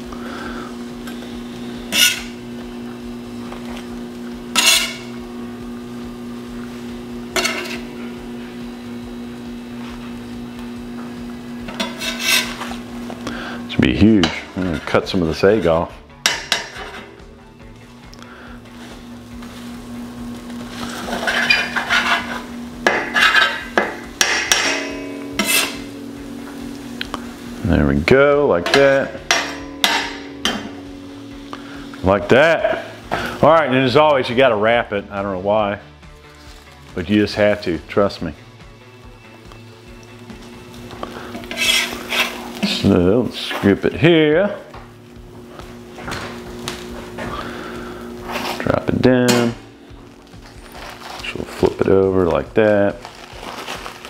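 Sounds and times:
faint sizzle: 0.0s - 15.5s, 17.2s - 35.4s, 39.0s - 54.0s
spatula scraping on griddle: 1.7s - 2.6s, 4.5s - 5.2s, 7.3s - 8.2s, 11.6s - 13.6s, 14.2s - 17.2s, 18.7s - 27.6s, 40.4s - 43.8s, 46.4s - 48.7s.

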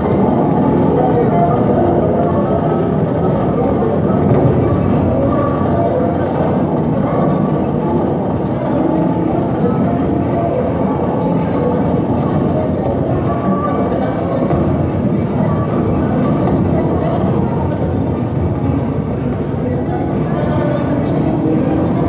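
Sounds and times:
low churning noise: 0.0s - 22.0s.

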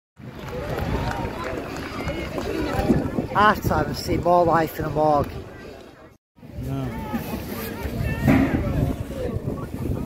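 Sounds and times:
wind buffeting microphone: 0.2s - 5.5s, 7.7s - 10.0s.

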